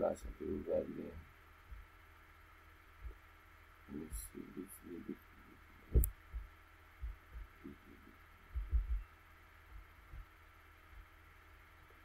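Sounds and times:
dull low thumps: 1.7s - 1.9s, 3.0s - 3.2s, 5.9s - 9.1s, 9.7s - 10.3s.

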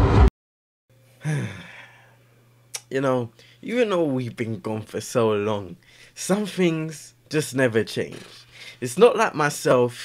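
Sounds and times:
man sighing: 1.2s - 2.2s
man speaking: 2.8s - 10.0s.

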